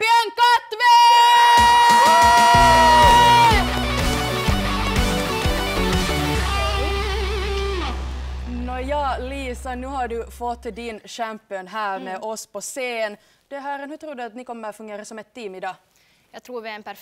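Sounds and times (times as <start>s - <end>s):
electric guitar riff: 2.0s - 10.7s.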